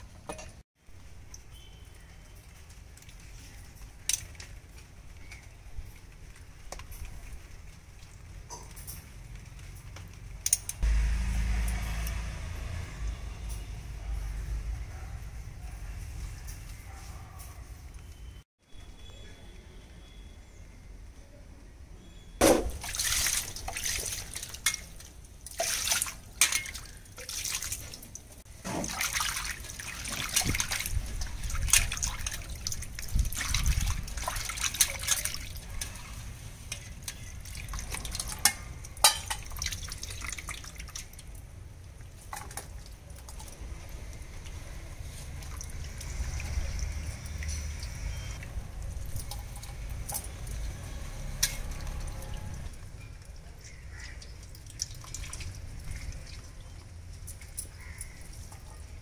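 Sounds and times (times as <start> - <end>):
water splashing in steel basin: 22.4 - 59.0.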